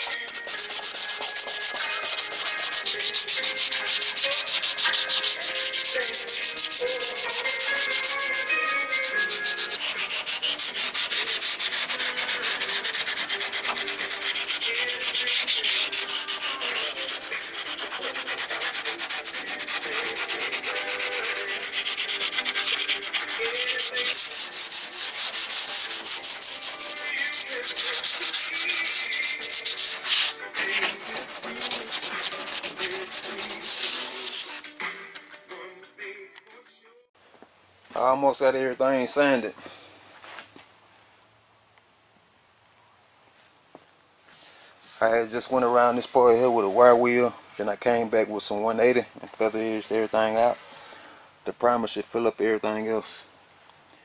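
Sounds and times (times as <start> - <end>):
sanding pad rubbing on metal: 0.0 - 34.6, 44.4 - 47.1, 49.4 - 50.9.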